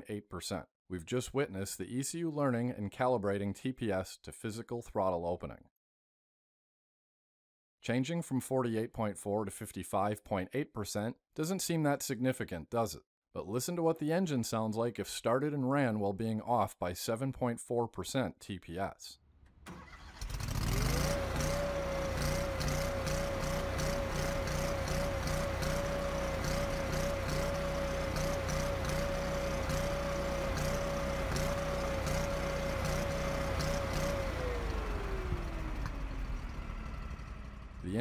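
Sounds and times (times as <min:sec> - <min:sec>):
engine running at high speed: 0:20.2 - 0:37.8.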